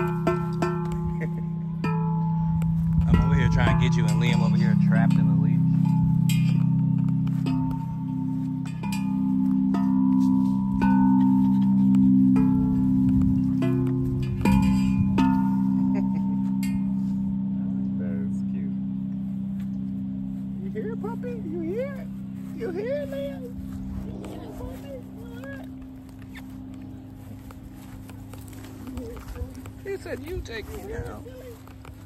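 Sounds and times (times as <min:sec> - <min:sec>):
tubular chimes struck with mallet: 0:00.0 - 0:32.0.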